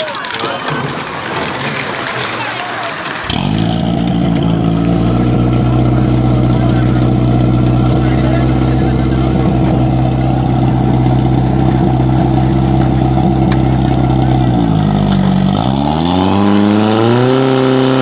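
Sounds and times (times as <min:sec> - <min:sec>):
pump engine at high revs: 0:03.0 - 0:18.0.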